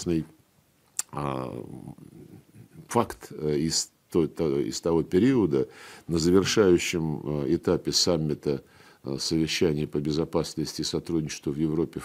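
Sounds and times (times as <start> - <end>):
man speaking: 0.0 - 0.4, 1.0 - 12.0
lip click: 0.9 - 1.2.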